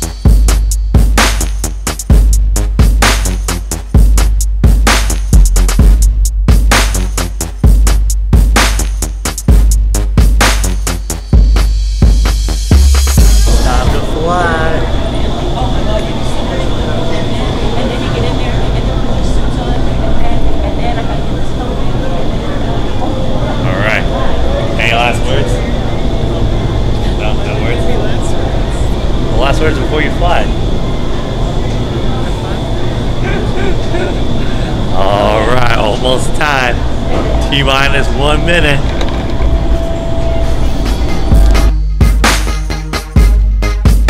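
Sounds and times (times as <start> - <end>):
steady hum: 0.0 - 42.5
wind tunnel air rushing: 13.2 - 41.7
thin high whine: 13.2 - 41.8
people talking: 13.4 - 39.1.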